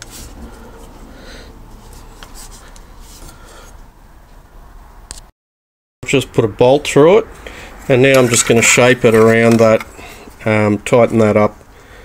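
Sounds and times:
rubbing and scraping of steel strip: 0:01.7 - 0:03.8, 0:07.9 - 0:10.4.

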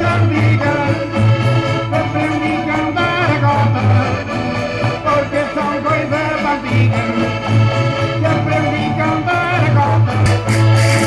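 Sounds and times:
folk dance music with accordion: 0:00.0 - 0:11.0.

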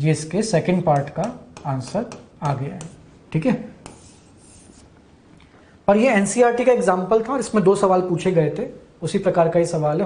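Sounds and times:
person speaking: 0:00.0 - 0:04.9, 0:05.8 - 0:10.0
marker pen rubbing on whiteboard: 0:01.6 - 0:03.1, 0:03.8 - 0:05.0.

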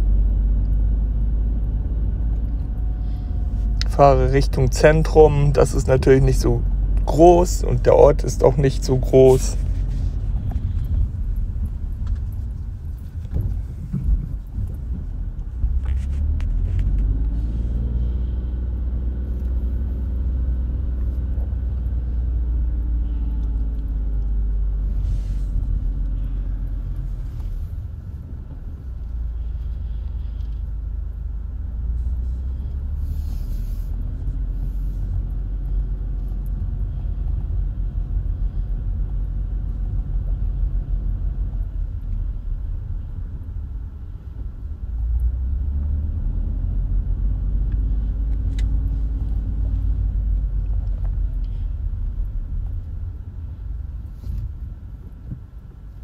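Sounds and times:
car engine accelerating: 0:00.0 - 0:56.0
road rumble: 0:00.0 - 0:56.0.

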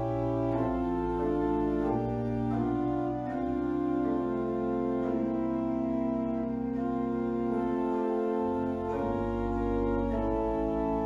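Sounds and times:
organ playing slow chords: 0:00.0 - 0:11.0.

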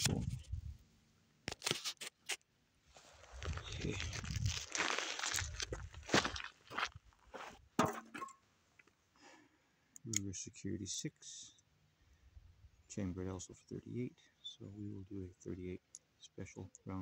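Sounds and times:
footsteps on dirt and twigs: 0:03.0 - 0:08.3.

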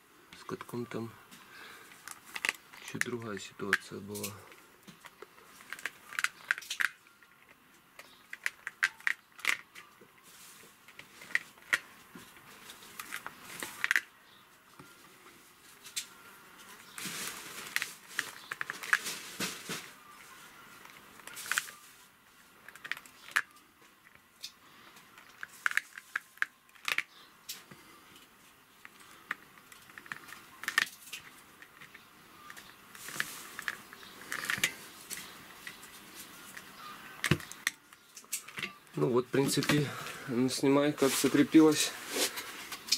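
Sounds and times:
metal comb clicking and scraping wires: 0:01.9 - 0:09.8.

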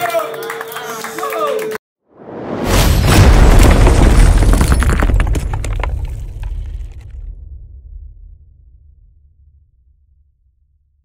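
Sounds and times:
whoosh: 0:02.1 - 0:04.0
deep boom: 0:02.2 - 0:10.7
rumble: 0:02.2 - 0:11.0
shattering debris: 0:02.8 - 0:07.2.

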